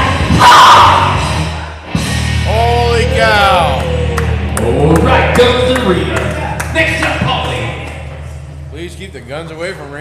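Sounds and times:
loud overlapping voices: 2.4s - 9.4s.

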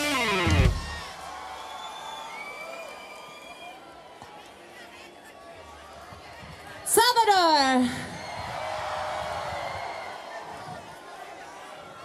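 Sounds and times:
large crowd cheering: 0.0s - 12.0s.

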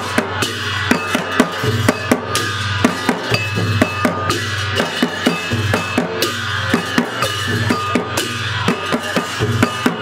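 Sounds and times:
barrel drums beaten: 0.0s - 10.0s
hand cymbals ringing: 0.0s - 10.0s.

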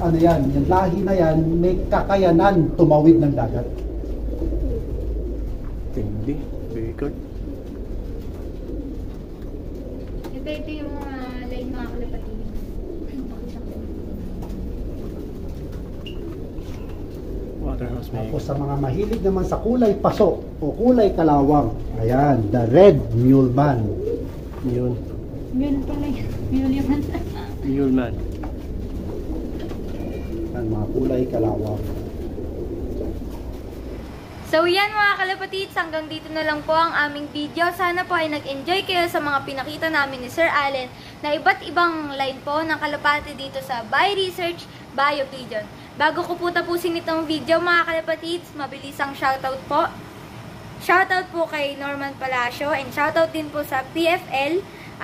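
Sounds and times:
low rumbling murmur: 0.0s - 55.0s
pigeons cooing: 0.0s - 55.0s.

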